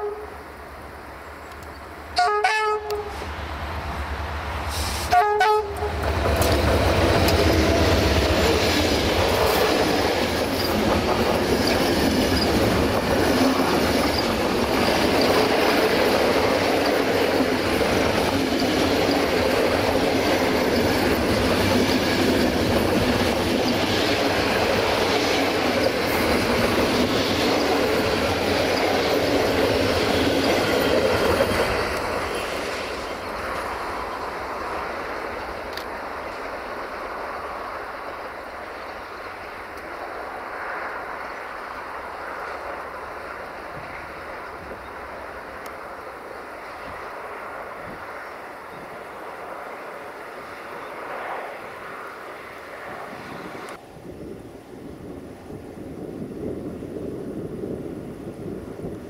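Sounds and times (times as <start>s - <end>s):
locomotive horn blasts: 0.0s - 0.4s, 2.2s - 3.3s, 4.8s - 6.0s
train running on rails: 0.0s - 59.0s.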